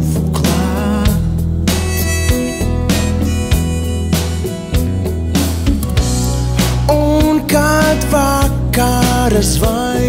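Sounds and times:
instrumental pop music: 0.0s - 10.0s.

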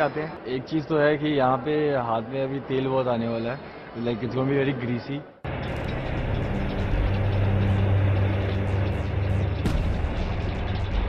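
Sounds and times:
tank engine rumble: 5.5s - 11.0s.

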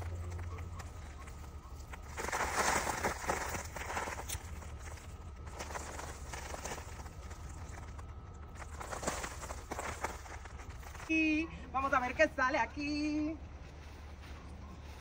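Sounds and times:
footsteps in garden: 0.0s - 15.0s
rustling and crunching of plants: 0.0s - 15.0s.

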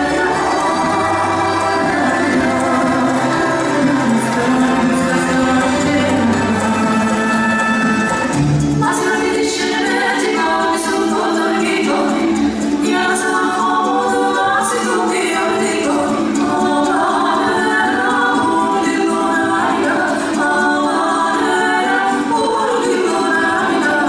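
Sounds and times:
choir singing a cappella: 0.0s - 24.0s.

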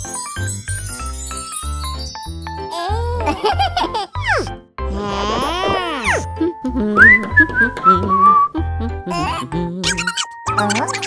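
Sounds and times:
light children's music: 0.0s - 11.0s
person whistling: 7.0s - 8.6s.

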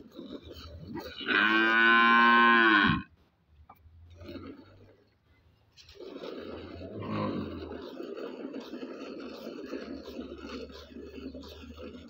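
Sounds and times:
cow mooing: 1.0s - 3.1s.

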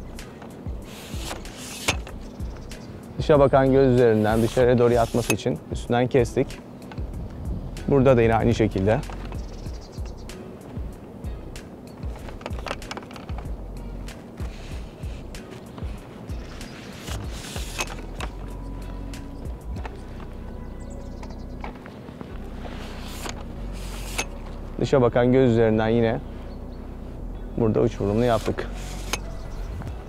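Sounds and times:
background music: 0.0s - 30.0s
pole pruner clicking and snapping: 0.1s - 3.0s, 4.0s - 5.5s, 6.5s - 7.1s, 7.8s - 10.8s, 11.5s - 20.3s, 23.0s - 24.6s, 28.3s - 29.4s.

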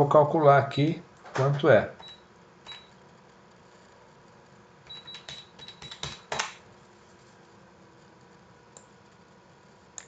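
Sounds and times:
calculator key presses with beeps: 4.9s - 6.4s.

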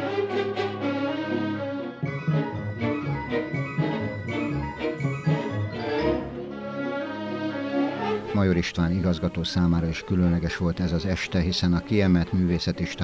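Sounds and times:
symphony orchestra playing: 0.0s - 13.0s.

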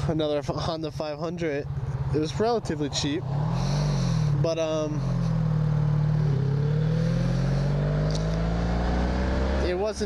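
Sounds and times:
motorcycle engine accelerating: 1.6s - 10.0s.

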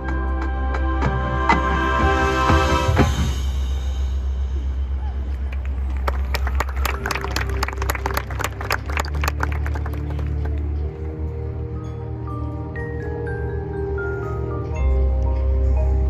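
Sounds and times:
spectators clapping: 5.3s - 10.8s.

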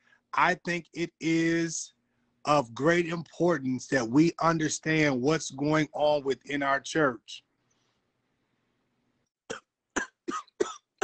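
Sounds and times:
man coughing: 10.0s - 10.9s.

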